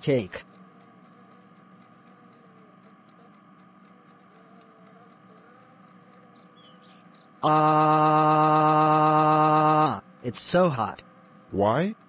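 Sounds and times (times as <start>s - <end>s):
faint background ambience: 0.0s - 12.0s.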